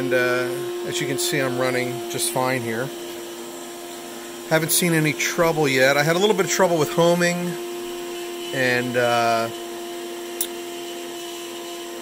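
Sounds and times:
router whining while milling wood: 0.0s - 12.0s.

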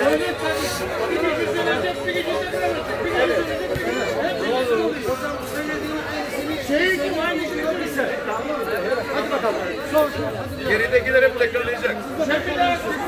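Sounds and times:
overlapping chatter: 0.0s - 13.0s.

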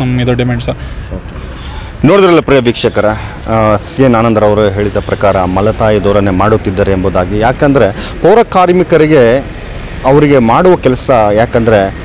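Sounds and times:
steady background noise: 0.0s - 12.0s
man speaking into a microphone: 2.0s - 12.0s.

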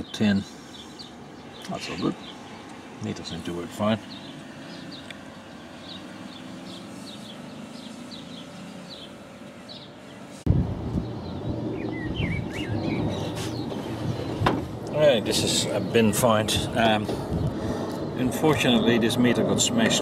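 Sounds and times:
outdoor hum: 0.0s - 20.0s
small birds chirping: 0.0s - 20.0s
low rumbling noise: 10.4s - 20.0s.

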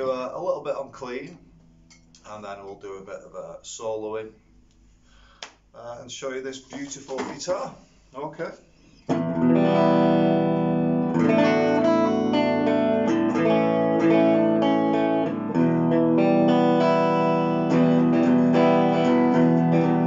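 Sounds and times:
clean electric guitar chords: 9.1s - 20.0s.

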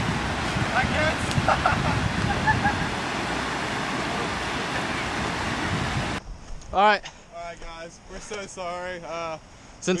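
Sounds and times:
water flowing over spillway: 0.0s - 6.2s.

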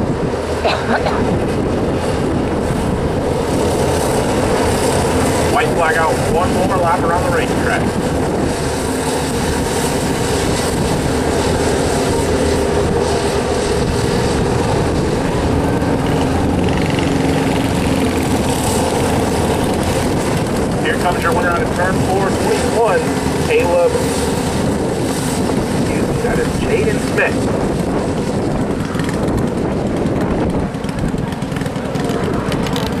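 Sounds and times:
racing kart engines buzzing: 0.0s - 33.0s.

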